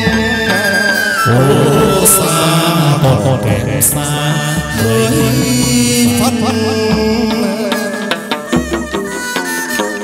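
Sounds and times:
person singing long notes: 0.0s - 8.6s
band accompaniment: 0.0s - 10.0s.

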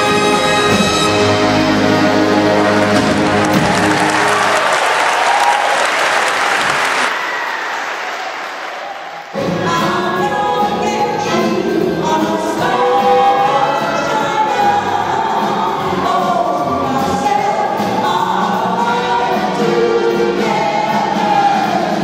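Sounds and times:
group of voices singing: 9.4s - 22.0s.

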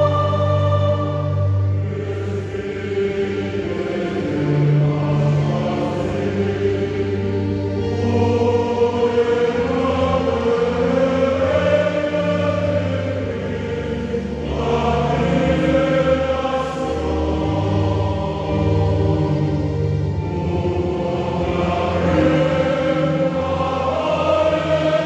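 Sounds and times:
church choir singing: 0.0s - 25.0s.

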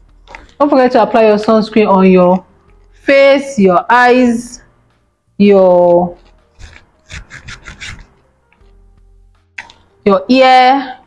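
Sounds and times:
fingers rubbing skin: 6.2s - 8.2s.

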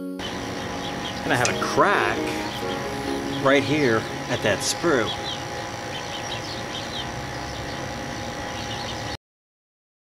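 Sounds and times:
steady outdoor drone: 0.2s - 9.2s.

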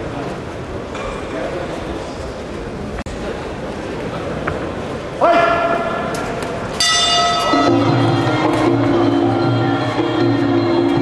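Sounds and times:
boxing ring bell ringing: 6.8s - 8.2s.

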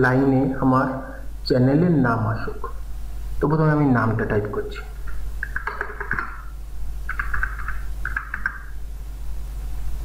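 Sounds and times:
steady low hum: 0.0s - 10.0s
computer keyboard typing: 5.0s - 6.5s, 7.1s - 8.8s.

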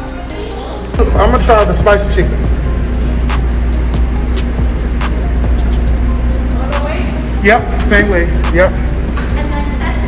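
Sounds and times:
background music: 0.0s - 10.0s
low rumble and hum: 0.0s - 10.0s.

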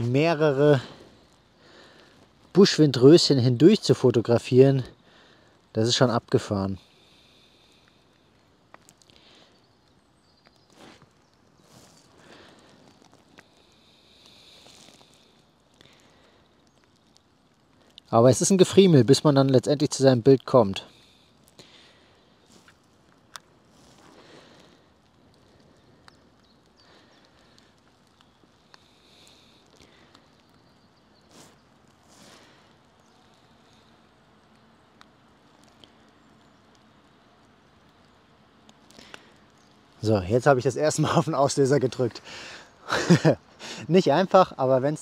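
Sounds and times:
rustling on leaf-covered ground: 6.0s - 38.0s.

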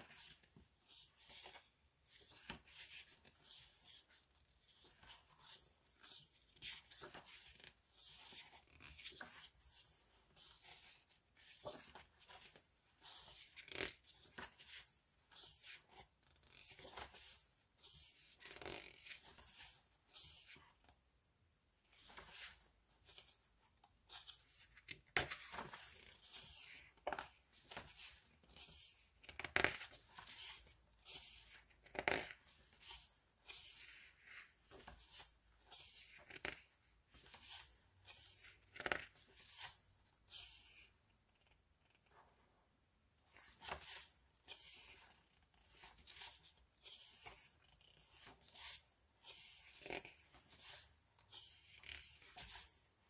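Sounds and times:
pages turning: 0.0s - 20.9s, 21.9s - 23.4s, 24.1s - 42.0s, 43.3s - 52.8s.

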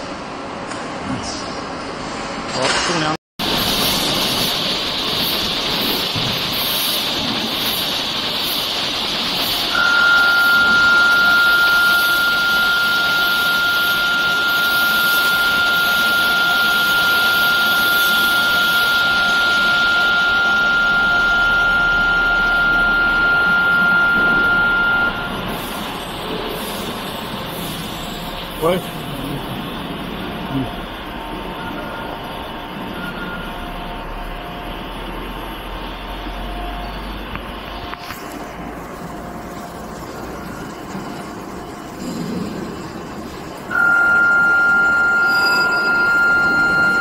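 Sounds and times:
steady high tone: 3.4s - 47.0s
wire rewinding machine running: 3.4s - 47.0s.

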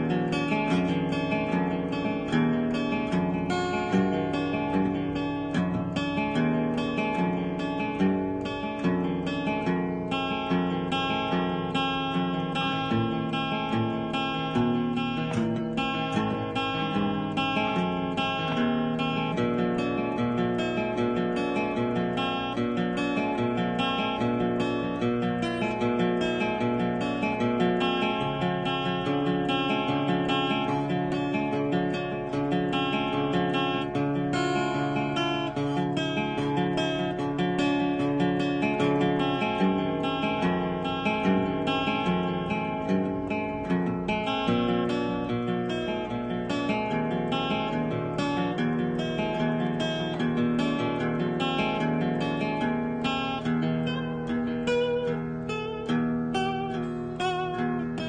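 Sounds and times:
acoustic guitar picked tune: 0.0s - 58.0s.

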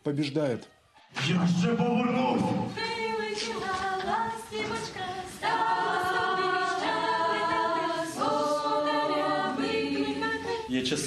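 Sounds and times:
group singing a carol unaccompanied: 1.2s - 11.0s.

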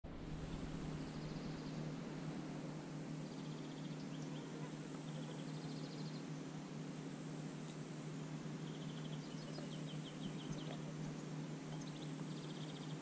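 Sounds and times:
steady low hum: 0.1s - 13.0s
high chirping trills: 3.2s - 6.3s, 8.6s - 13.0s.

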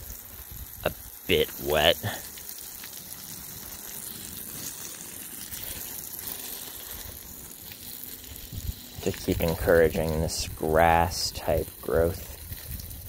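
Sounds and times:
hose spraying water on plants: 0.0s - 13.0s.

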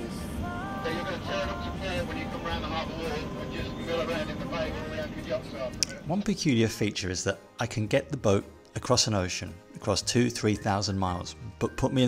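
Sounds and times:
boat engine low rumble: 0.0s - 6.3s
faint voices: 0.0s - 6.3s
music: 0.0s - 12.0s.

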